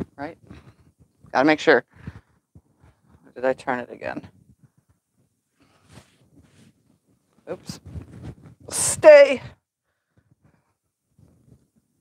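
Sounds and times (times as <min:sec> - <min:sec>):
fabric rustling: 0:04.3 - 0:08.7.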